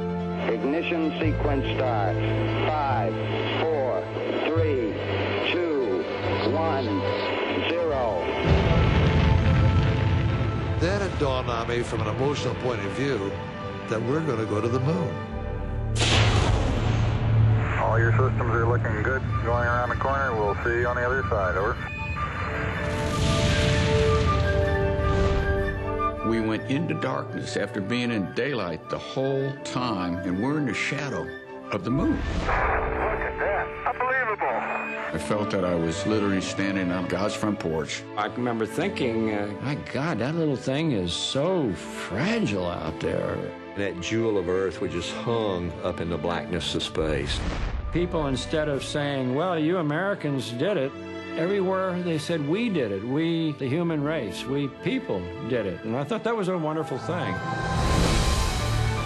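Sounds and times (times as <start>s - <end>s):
music: 0.0s - 59.0s
voice over radio: 0.4s - 8.4s, 17.6s - 21.9s, 32.9s - 35.5s.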